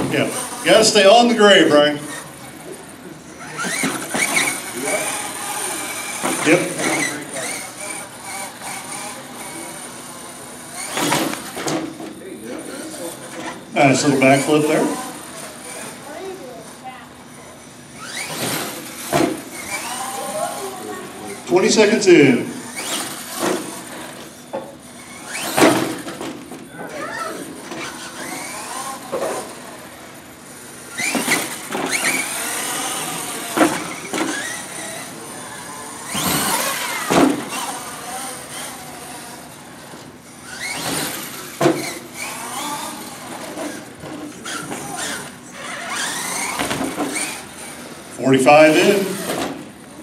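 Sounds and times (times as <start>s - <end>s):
toy truck motor whining: 0.0s - 50.0s
toy truck landing thuds: 25.3s - 26.6s, 36.1s - 37.8s, 45.9s - 47.4s.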